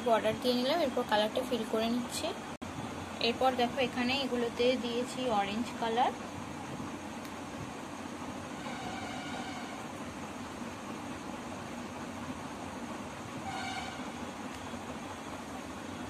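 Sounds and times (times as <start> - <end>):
steady background noise: 0.0 - 16.0
faint distant horn: 8.6 - 10.0, 13.4 - 14.2.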